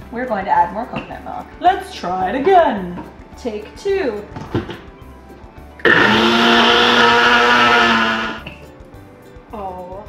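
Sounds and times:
blender motor running: 5.8 - 8.5.

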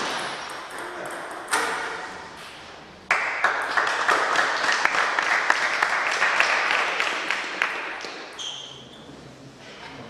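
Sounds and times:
small group applauding: 3.1 - 8.3.

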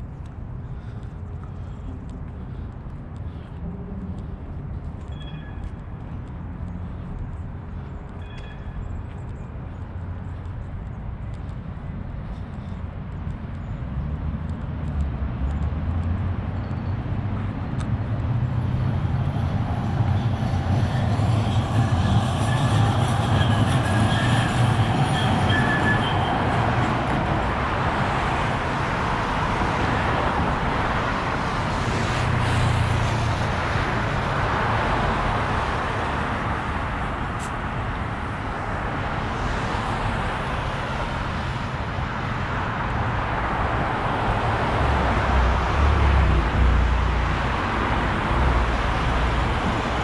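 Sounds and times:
street traffic passing: 0.0 - 50.0
heavy vehicle rumbling with whine: 13.9 - 50.0.

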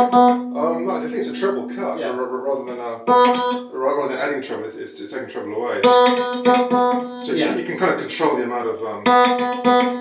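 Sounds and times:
electric guitar chords and notes: 0.0 - 4.0, 5.7 - 8.2, 9.0 - 10.0.

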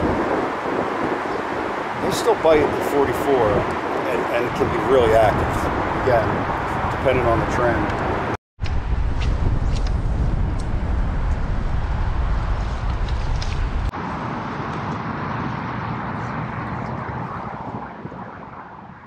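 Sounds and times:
rushing water: 0.0 - 6.8
wind buffeting microphone: 0.0 - 19.0.

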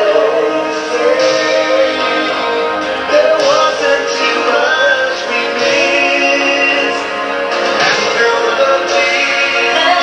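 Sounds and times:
song with singing and backing: 0.0 - 10.0.

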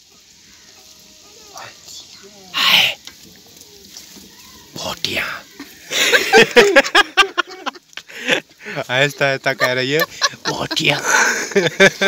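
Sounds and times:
person whispering: 1.5 - 3.0, 4.7 - 5.5.

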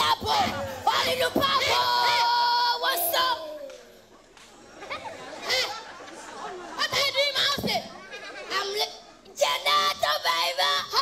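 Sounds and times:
chatter in a hall: 0.0 - 11.0.

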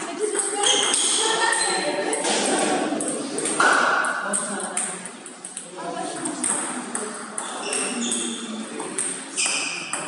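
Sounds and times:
table tennis balls clicking: 0.0 - 10.0.

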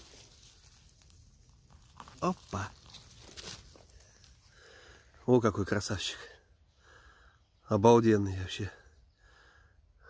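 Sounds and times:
rustling of dry leaves and twigs: 0.0 - 6.0.

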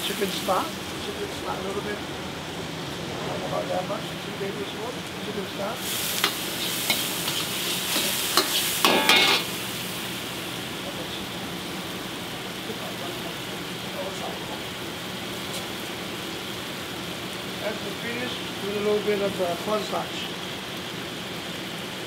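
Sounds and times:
meat and mushrooms sizzling in wok: 0.0 - 3.2, 4.0 - 22.0
metal ladle clanking and scraping: 6.3 - 9.5.

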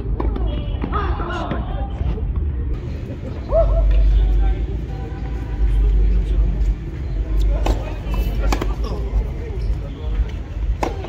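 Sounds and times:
tennis ball strikes: 7.6 - 8.9, 10.7 - 11.0.

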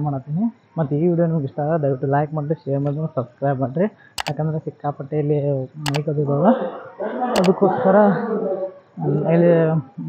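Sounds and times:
double mouse click: 7.4 - 7.6.

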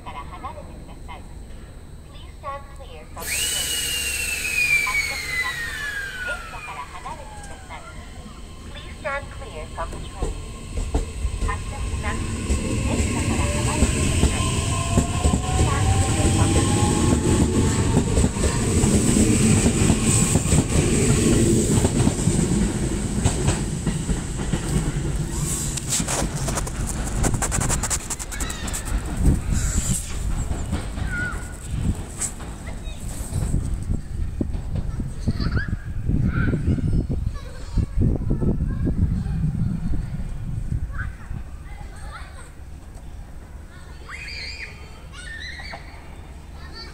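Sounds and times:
rumble of train wheels: 0.1 - 46.9
electric train motors whining: 2.8 - 34.5.

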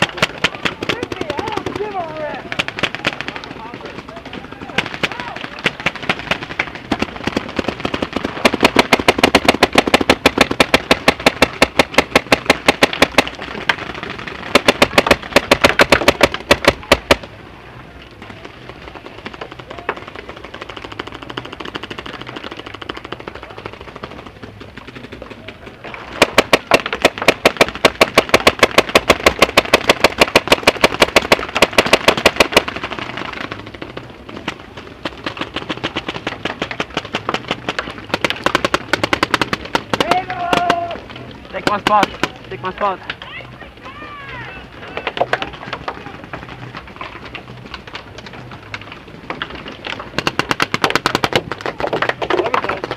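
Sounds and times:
paintball markers firing rapidly: 0.0 - 17.4, 18.2 - 43.0, 44.9 - 52.9
distant popping: 0.0 - 52.9.

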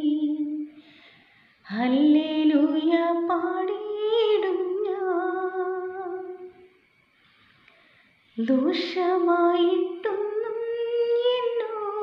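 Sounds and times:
woman singing unaccompanied: 0.0 - 0.8, 1.7 - 6.7, 8.4 - 12.0.

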